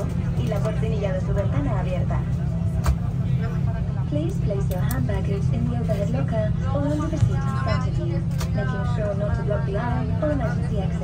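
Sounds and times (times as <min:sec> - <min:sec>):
airplane cabin hum: 0:00.0 - 0:11.0
people talking: 0:00.0 - 0:11.0.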